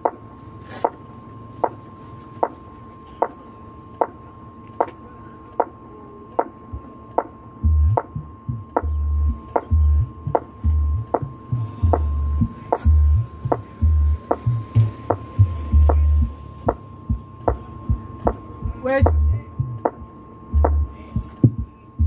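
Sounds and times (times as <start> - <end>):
steady clicks over speakers: 0.0 - 22.0
steady tone: 6.4 - 22.0
heavy deep bass notes: 7.6 - 21.8.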